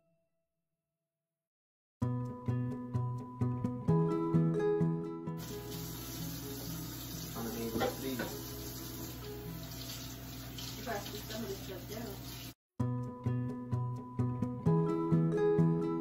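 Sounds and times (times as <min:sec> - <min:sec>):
background music: 0:02.0 - 0:10.6, 0:12.8 - 0:16.0
tap running into sink: 0:05.4 - 0:12.5.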